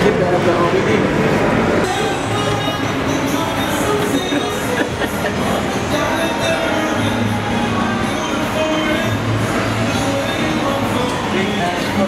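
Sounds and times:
echoing shopping mall din: 0.0 - 12.0.

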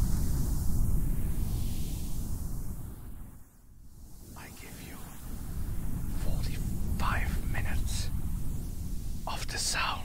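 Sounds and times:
steady low rumble: 0.0 - 10.0
person whispering: 4.4 - 5.2, 6.1 - 8.1, 9.2 - 10.0.

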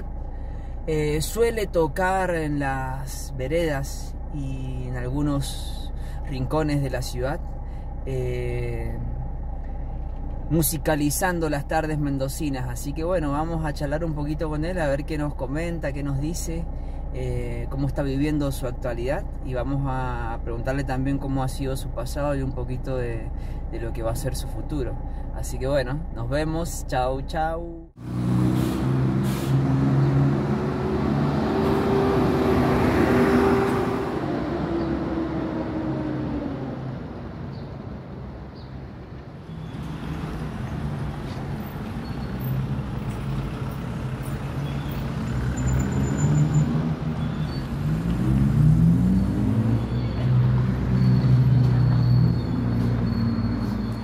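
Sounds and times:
vehicle engines passing: 27.9 - 54.0.

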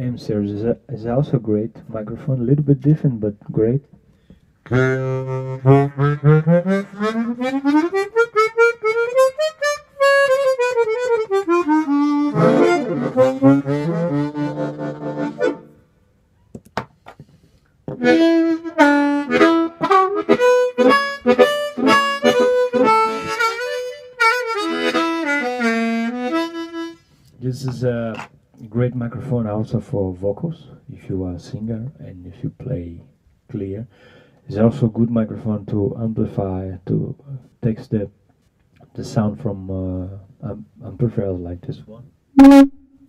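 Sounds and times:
harmonica playing: 4.6 - 15.8, 17.9 - 27.1, 42.4 - 43.0.

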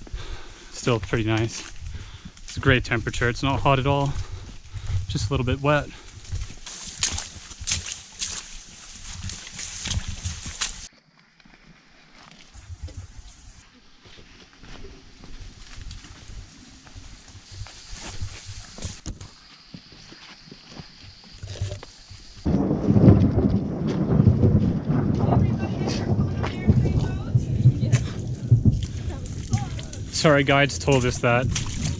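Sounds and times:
footsteps on wet trail: 0.0 - 31.9
thunder rumbling: 22.4 - 31.9.

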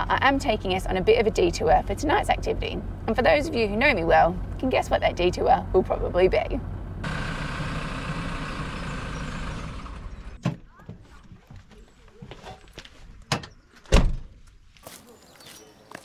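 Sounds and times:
engine running: 0.0 - 10.5
door slammed shut: 13.3 - 14.4.

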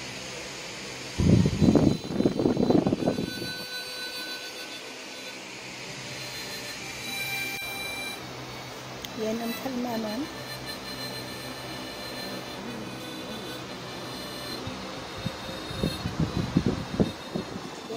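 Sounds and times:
fan air buffeting microphone: 0.0 - 17.9.

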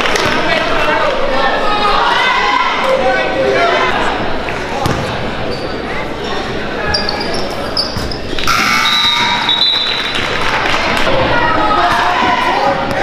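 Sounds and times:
voices echoing in gym: 0.0 - 13.0
high held tone: 8.4 - 10.3.

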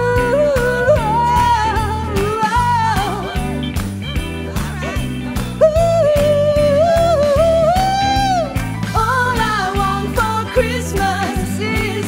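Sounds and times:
woman singing wordless vocals: 0.0 - 3.5, 5.6 - 12.0
jazz band playing: 0.0 - 12.0.

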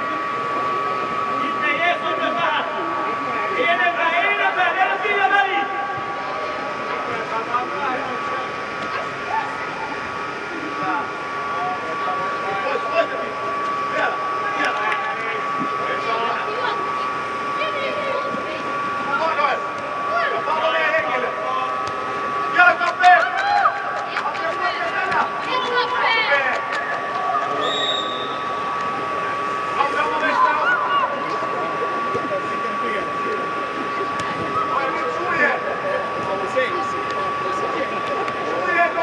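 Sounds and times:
steady high hum: 0.0 - 39.0
players shouting in echoing hall: 19.5 - 31.8.

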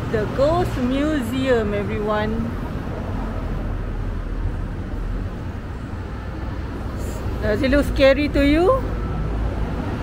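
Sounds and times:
street noise low rumble: 0.0 - 10.0.

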